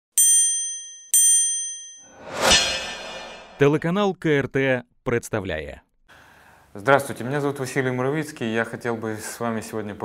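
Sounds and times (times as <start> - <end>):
bright bell-like dings: 0.2 - 2.2.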